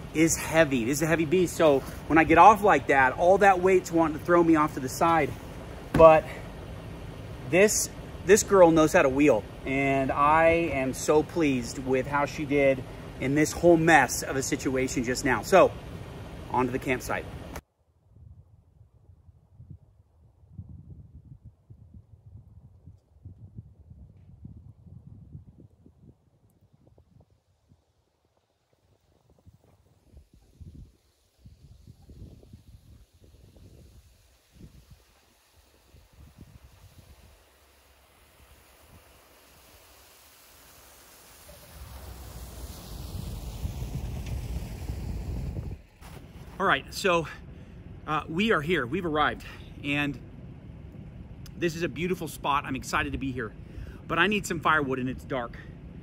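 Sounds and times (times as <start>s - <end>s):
car engine driving through snow: 0.0s - 9.4s, 35.0s - 48.1s
wind buffeting microphone: 17.4s - 37.5s, 41.5s - 56.0s.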